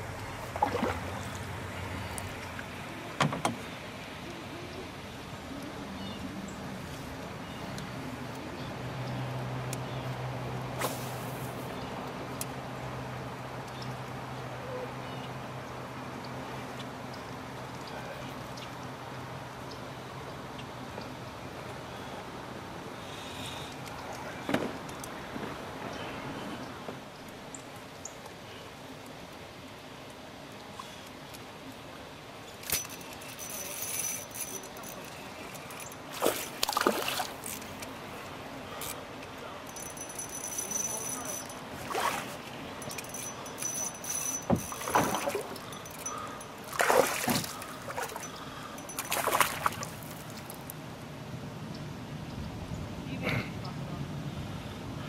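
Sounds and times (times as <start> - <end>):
low steady hum: 0.0 - 55.0
water lapping against canoe: 0.1 - 3.8, 35.1 - 38.8, 41.6 - 43.6, 44.3 - 50.7.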